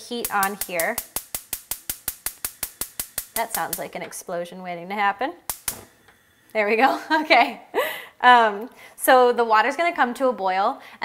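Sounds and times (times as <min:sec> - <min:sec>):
spark igniter clicking: 0:00.0 - 0:04.3, 0:05.4 - 0:06.2.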